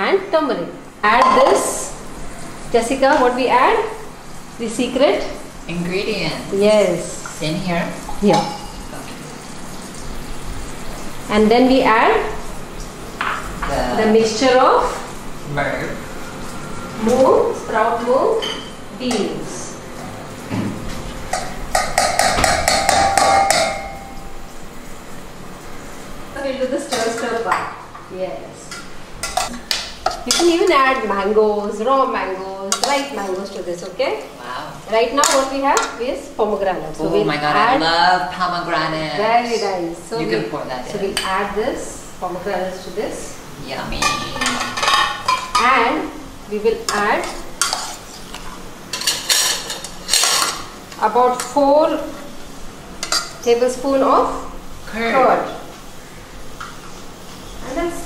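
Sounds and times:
metal strainer tapping on pot: 21.3s - 24.1s
metal spoon scraping a pot: 46.9s - 50.6s.

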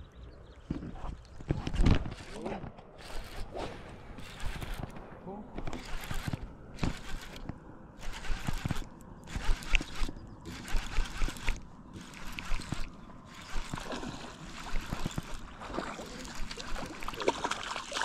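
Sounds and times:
fishing reel whirring: 3.0s - 3.6s, 4.2s - 4.9s, 5.8s - 15.5s, 16.2s - 17.2s.

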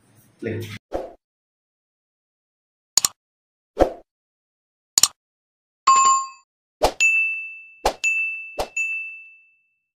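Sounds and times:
bright bell-like ding: 7.0s - 9.8s.

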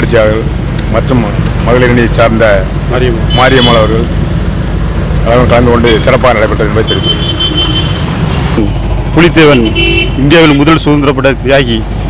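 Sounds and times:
man speaking into microphones: 0.0s - 4.1s, 5.2s - 7.2s, 8.6s - 11.9s
road traffic rumble: 0.0s - 12.0s.

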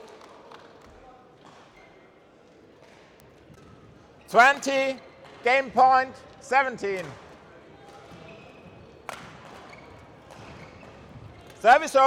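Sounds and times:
shoes squeaking on court floor: 7.8s - 11.7s.

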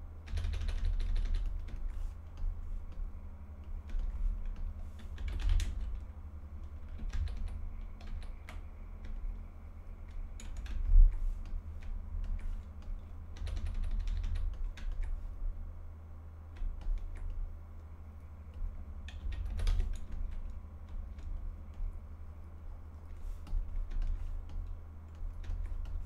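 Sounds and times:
low hum: 0.0s - 26.0s
keyboard keys clicking: 0.3s - 15.3s, 16.5s - 22.1s, 22.9s - 26.0s.

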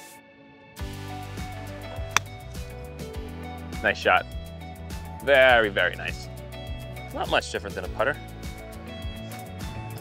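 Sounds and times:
background music: 0.0s - 10.0s
golf club striking ball: 2.0s - 2.5s.

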